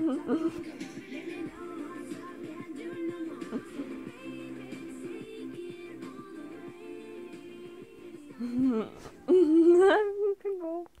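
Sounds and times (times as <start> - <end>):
person laughing: 0.0 - 0.8, 3.4 - 4.0, 8.4 - 10.4.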